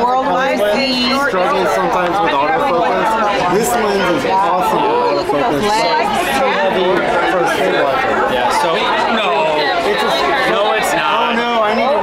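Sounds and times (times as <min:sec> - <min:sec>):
overlapping conversation: 0:00.0 - 0:12.0.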